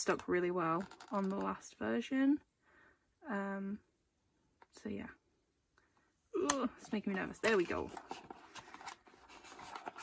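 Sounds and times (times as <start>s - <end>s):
cardboard sleeve rubbing and scraping: 7.9s - 10.0s.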